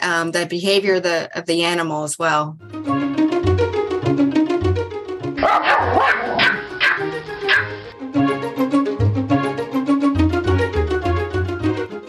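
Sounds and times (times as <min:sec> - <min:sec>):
music: 0:02.5 - 0:12.0
dog barking: 0:05.4 - 0:07.8.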